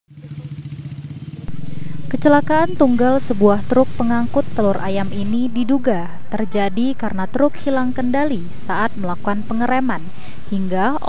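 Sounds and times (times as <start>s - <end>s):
vehicle engine running: 0.1s - 11.0s.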